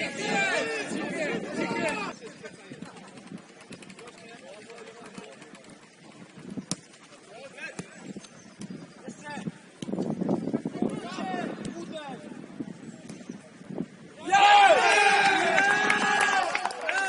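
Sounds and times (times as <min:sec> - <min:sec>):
distant shouts: 0:00.0 - 0:02.2, 0:14.2 - 0:17.0.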